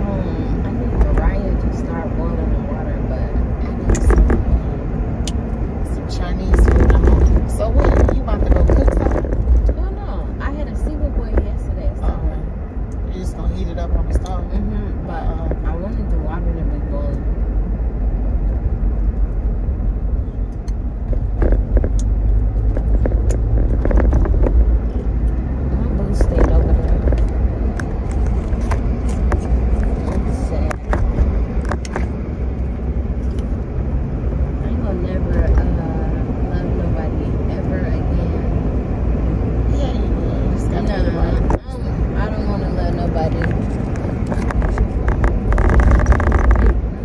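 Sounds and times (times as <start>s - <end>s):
car road and engine noise: 0.0s - 47.0s
indistinct voices: 22.9s - 32.0s, 39.7s - 47.0s.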